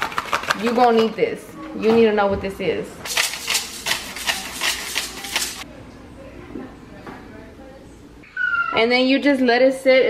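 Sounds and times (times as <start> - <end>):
pepper mill grinding: 0.0 - 1.1, 3.1 - 5.7.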